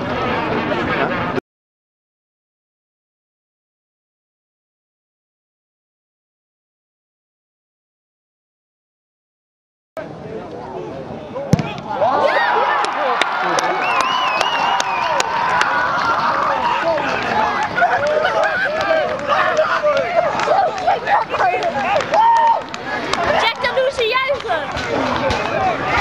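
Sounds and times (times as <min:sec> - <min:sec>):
crowd shouting and cheering: 0:11.4 - 0:26.0
handclaps: 0:12.8 - 0:25.6.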